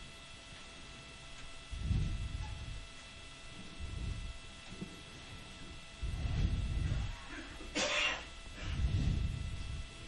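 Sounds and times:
muffled low sounds: 1.4 - 7.7, 8.4 - 10.0.

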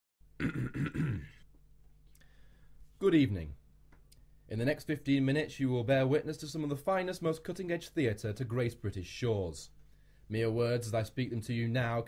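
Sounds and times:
man clearing his throat: 0.4 - 1.4.

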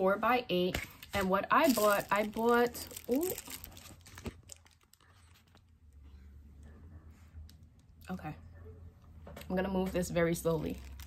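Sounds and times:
plastic mailer crinkling: 0.9 - 5.7, 10.6 - 11.0.

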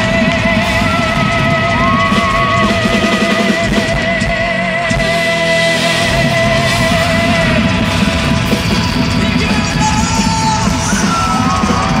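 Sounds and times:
live pop-rock band: 0.0 - 12.0
person singing and yelling: 9.1 - 12.0.

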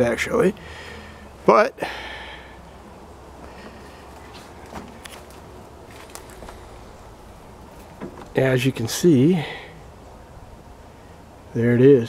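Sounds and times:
soft footsteps on grass: 3.4 - 8.5.

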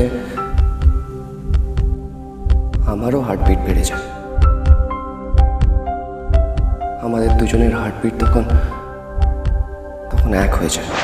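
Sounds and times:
soft background music with chimes: 0.0 - 10.9
heartbeat thumps: 0.6 - 2.9, 4.4 - 6.9.

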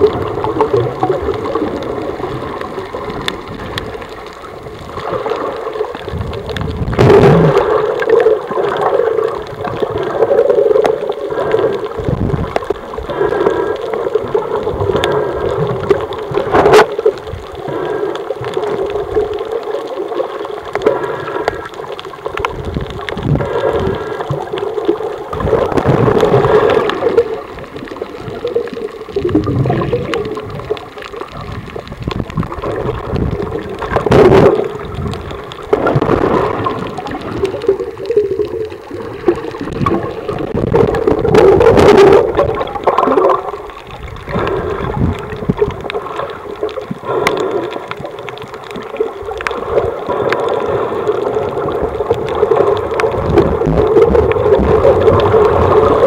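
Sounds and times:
bubbling: 0.0 - 56.0
underwater gurgling and rushing: 0.0 - 56.0.

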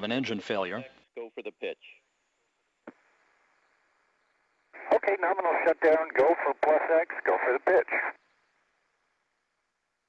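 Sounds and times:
radio static hiss: 1.2 - 9.2
radio voice: 4.8 - 8.2.

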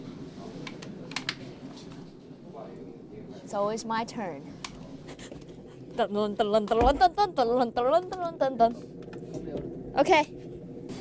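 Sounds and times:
steady low background noise: 0.0 - 11.0.

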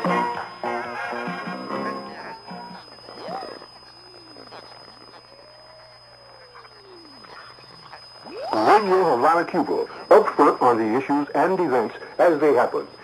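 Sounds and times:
faint radio hiss: 0.0 - 13.0
steady high whistle: 8.2 - 12.1
announcer speaking: 8.5 - 12.9.

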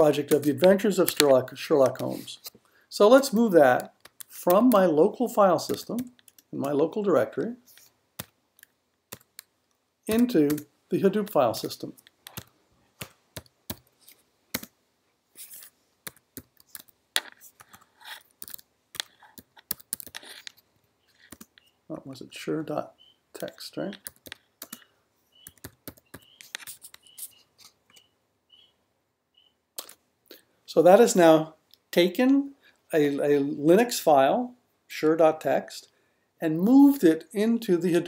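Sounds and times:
computer keyboard keystrokes: 14.5 - 14.7, 18.4 - 20.2, 25.4 - 27.0.

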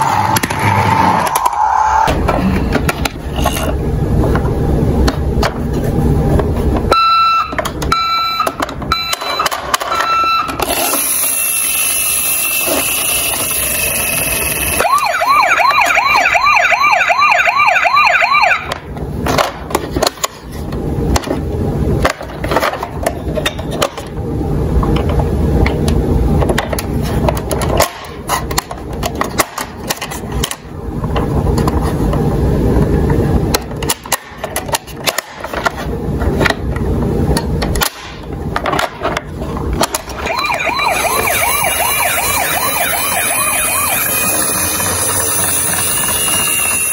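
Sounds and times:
fast warbling siren: 11.3 - 18.8, 40.1 - 46.9
plastic toy clicks and knocks: 24.8 - 31.8, 33.5 - 40.3
electronic toy sounds: 40.2 - 46.9.

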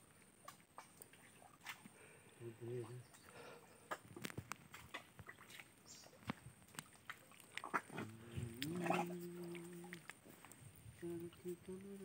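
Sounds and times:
wet mud clicks and pops: 3.9 - 5.6.

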